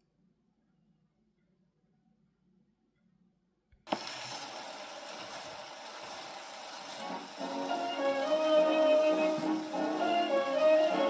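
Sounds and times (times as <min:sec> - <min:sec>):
phonograph surface hiss: 0:03.8 - 0:11.0
dance orchestra fox trot: 0:06.9 - 0:11.0.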